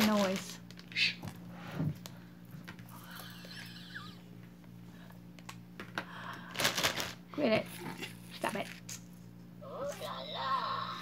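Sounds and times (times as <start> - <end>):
packaging crinkle: 0.0 - 1.0, 6.4 - 7.2
steady low hum: 0.0 - 11.0.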